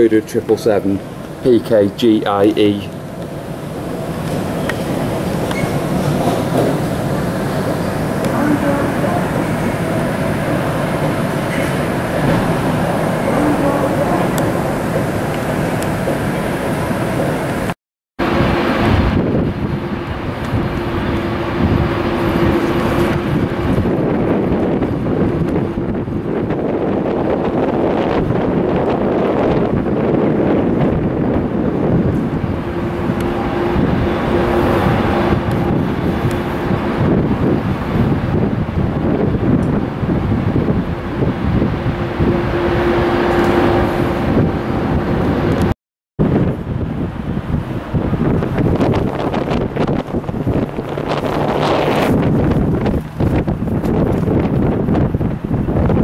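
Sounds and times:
jet engines of taxiing airliners: 0.0s - 56.0s
wind on microphone: 2.2s - 56.0s.

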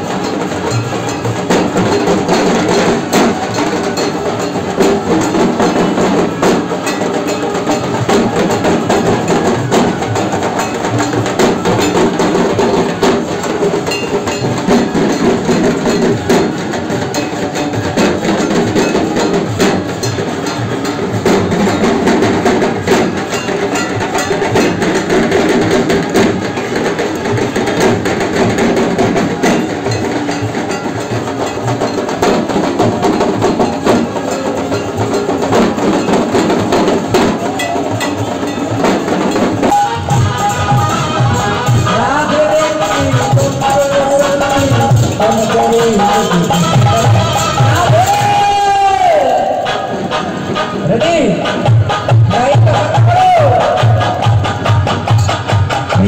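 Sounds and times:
barrel drums beaten with sticks: 0.0s - 49.7s.

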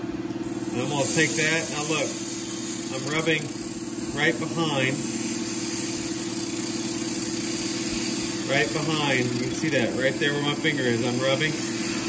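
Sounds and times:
gouge rubbing spinning wood: 0.7s - 12.0s.

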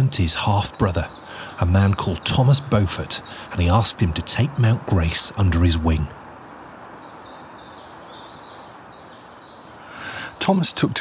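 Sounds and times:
small birds chirping: 0.0s - 11.0s
steady background hiss: 0.0s - 11.0s.

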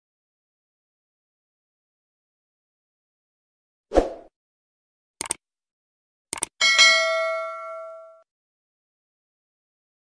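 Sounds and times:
bell chime notification: 6.6s - 8.2s.

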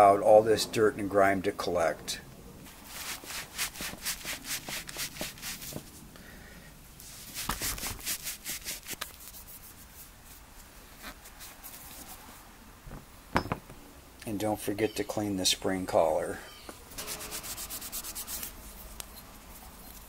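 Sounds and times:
rag rubbing on metal: 2.8s - 5.8s, 17.0s - 20.0s.

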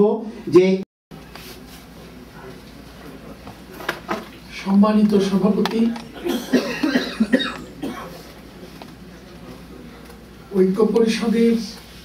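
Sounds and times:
man talking into microphone: 4.5s - 6.4s, 10.4s - 11.9s
man coughing: 6.1s - 8.2s.

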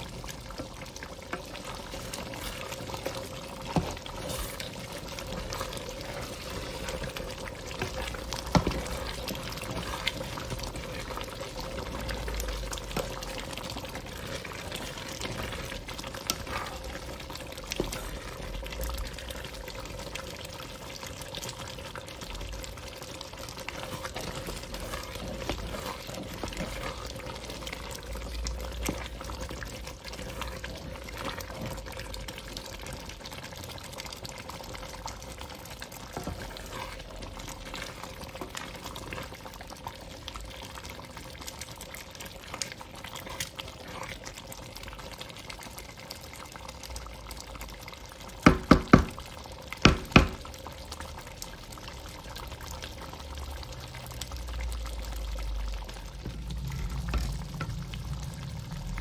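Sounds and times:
thick soup bubbling: 0.0s - 59.0s
wooden spoon stirring soup: 0.0s - 59.0s.

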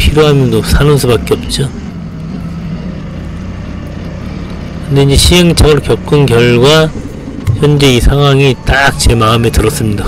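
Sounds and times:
forklift engine rumbling: 0.0s - 10.0s.

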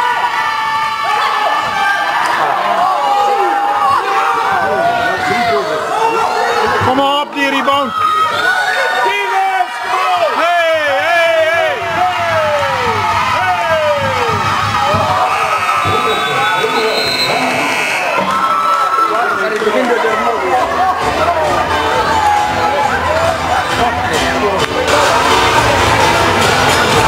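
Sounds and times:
crowd shouting and cheering: 0.0s - 27.0s.

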